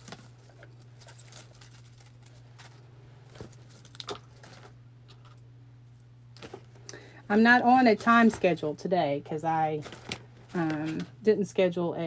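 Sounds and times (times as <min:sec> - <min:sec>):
low electrical hum: 0:00.0 - 0:12.0
rustling of artificial greenery: 0:09.7 - 0:11.2.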